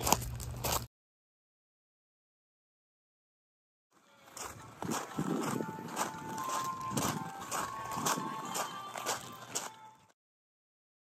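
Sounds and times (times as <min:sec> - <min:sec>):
footsteps on gravel: 0:00.0 - 0:00.9, 0:04.0 - 0:10.2.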